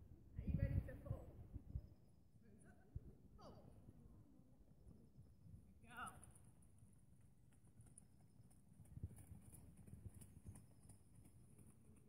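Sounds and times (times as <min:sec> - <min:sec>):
pony hoofbeats on soft ground: 0:04.9 - 0:12.0.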